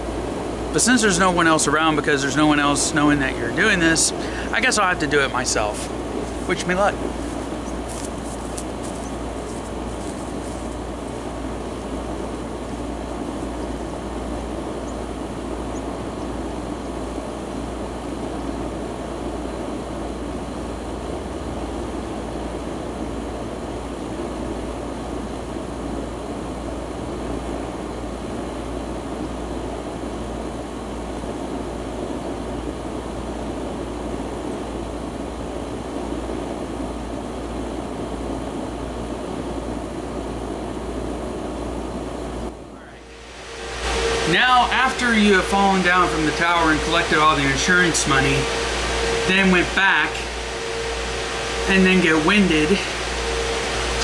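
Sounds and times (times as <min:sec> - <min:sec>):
steady rumbling noise: 0:00.0 - 0:54.0.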